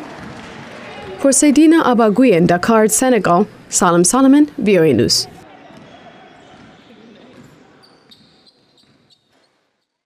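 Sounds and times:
players' voices: 0:00.0 - 0:09.4
basketballs bouncing on hardwood: 0:05.7 - 0:09.4.

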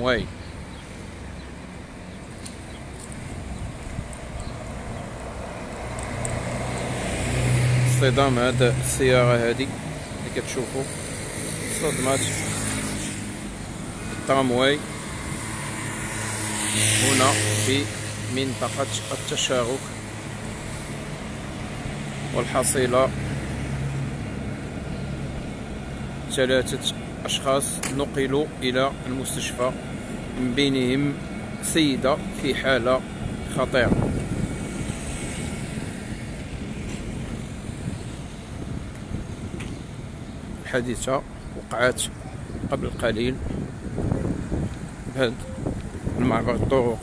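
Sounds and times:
wind rumble on microphone: 0:02.6 - 0:07.9, 0:32.3 - 0:47.0.

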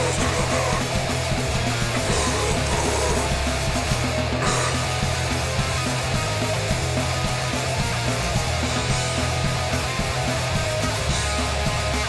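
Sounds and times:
bass guitar: 0:00.0 - 0:12.0
distorted electric guitars: 0:00.0 - 0:12.0
rapid driving drums: 0:00.0 - 0:12.0.

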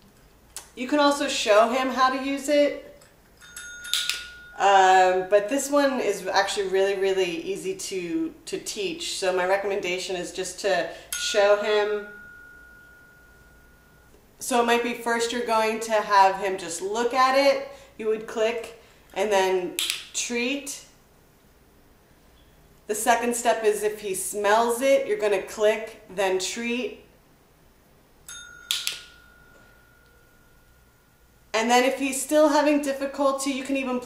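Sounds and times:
tap bell ringing: 0:03.4 - 0:04.6, 0:12.0 - 0:14.2, 0:28.3 - 0:30.8.

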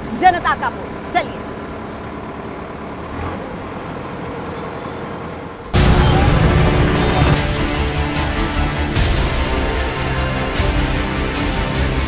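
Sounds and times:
street traffic: 0:00.0 - 0:12.0
tractor diesel engine running: 0:00.0 - 0:12.0.

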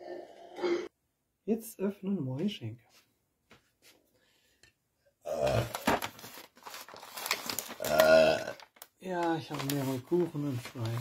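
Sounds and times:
wrapping paper rustling: 0:05.6 - 0:11.0.

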